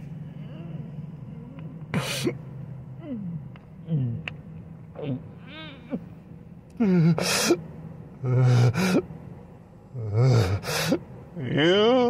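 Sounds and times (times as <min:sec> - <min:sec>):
loud gasping breath: 0:10.3 - 0:11.0.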